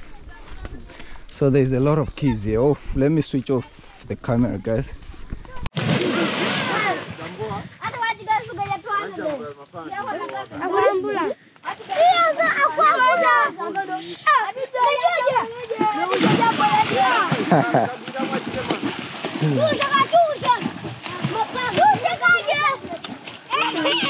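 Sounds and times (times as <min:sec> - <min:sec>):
voices shouting and chattering: 0:05.3 - 0:24.0
children splashing in water: 0:05.5 - 0:09.4, 0:11.6 - 0:24.0
large water splash: 0:05.7 - 0:07.5, 0:16.1 - 0:23.6.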